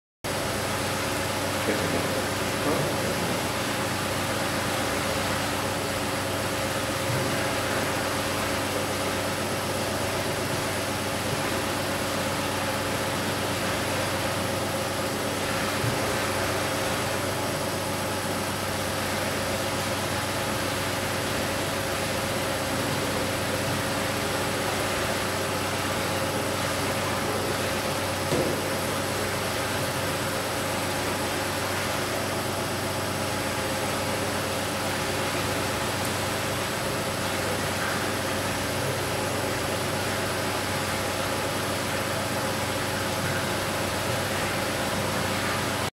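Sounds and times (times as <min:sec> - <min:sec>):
rushing water and air in pipe: 0:00.2 - 0:45.9
machinery hum: 0:00.3 - 0:45.9.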